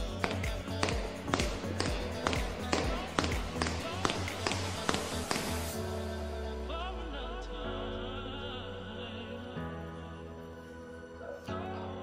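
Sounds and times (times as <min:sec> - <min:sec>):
drum beat: 0:00.0 - 0:05.8.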